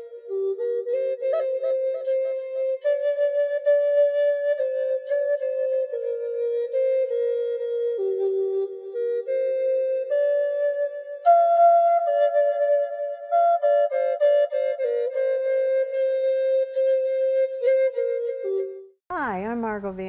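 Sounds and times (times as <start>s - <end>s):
slow instrumental melody: 0.0s - 19.0s.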